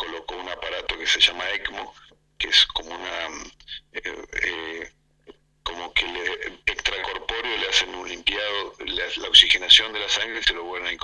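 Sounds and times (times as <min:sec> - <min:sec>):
man talking over a telephone: 0:00.0 - 0:11.0.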